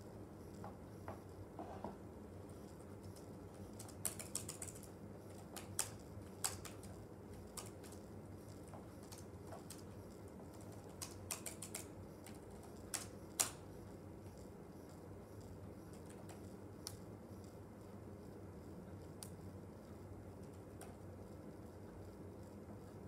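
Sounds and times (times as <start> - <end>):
keyboard typing: 2.6 - 13.7.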